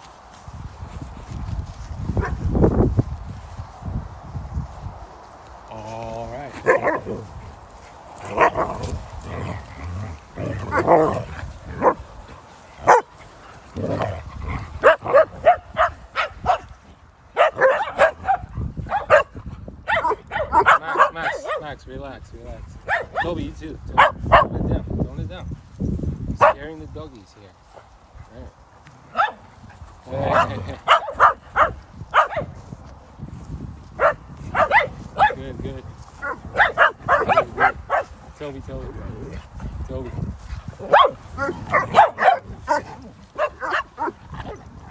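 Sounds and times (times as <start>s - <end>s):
dogs barking: 2.2s - 2.4s, 6.5s - 7.3s, 8.2s - 12.1s, 12.7s - 21.7s, 22.8s - 23.4s, 24.0s - 24.6s, 26.4s - 26.6s, 29.1s - 29.5s, 30.1s - 32.6s, 34.0s - 35.4s, 36.2s - 38.2s, 40.8s - 44.9s.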